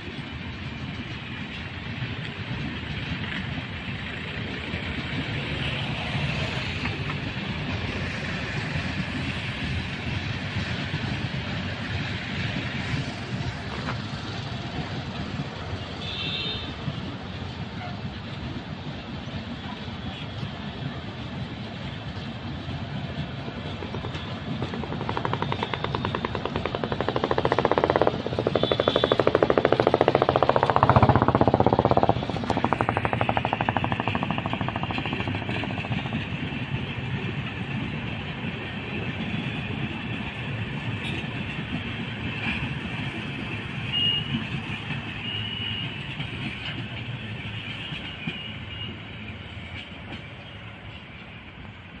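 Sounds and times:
train wheels clattering on rail: 0.0 - 52.0.

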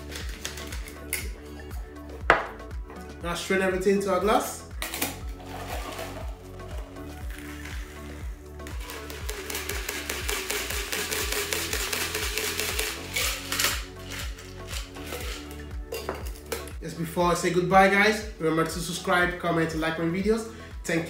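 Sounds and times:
background music with beat: 0.0 - 21.0
liquid pouring through strainer: 5.3 - 15.5.

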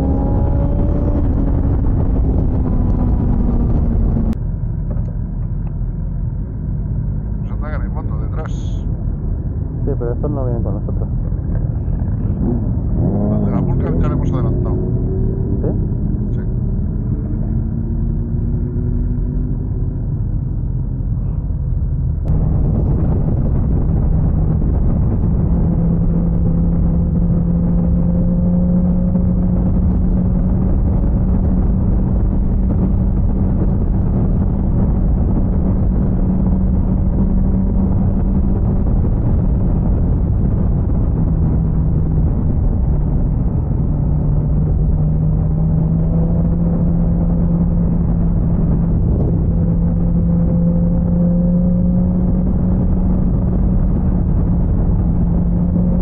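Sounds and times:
wind and road noise: 0.0 - 56.0.

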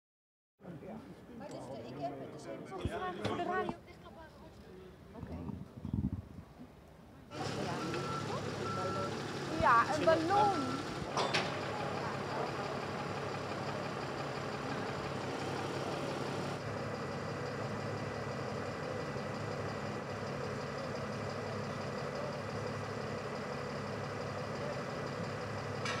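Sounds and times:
truck engine idling: 7.3 - 26.0.

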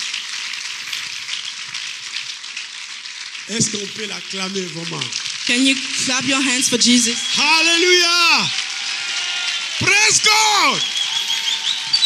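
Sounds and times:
crowd clapping: 0.0 - 12.0.

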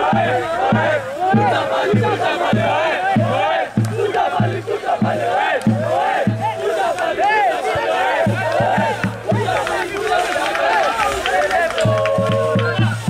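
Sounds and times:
steady drum beat: 0.0 - 13.0
supporters chanting in unison: 0.0 - 13.0.

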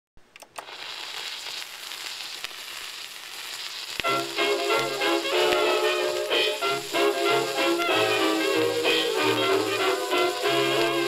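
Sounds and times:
record crackling hiss: 0.2 - 11.0.

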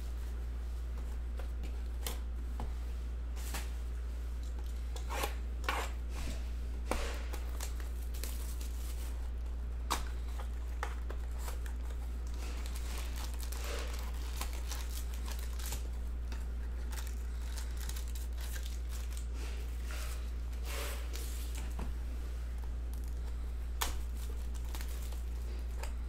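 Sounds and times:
steady low hum: 0.0 - 26.0
wrapper crinkling: 7.4 - 19.4, 24.0 - 25.9
plastic wrap tearing: 10.4 - 20.1, 23.8 - 25.4.

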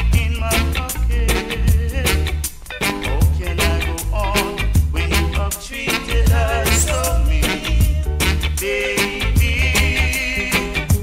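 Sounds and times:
reggae music with deep bass: 0.0 - 11.0.

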